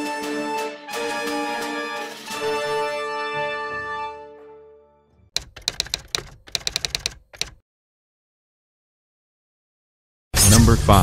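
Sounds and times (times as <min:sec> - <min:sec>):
keyboard key clicks: 0:05.4 - 0:07.6.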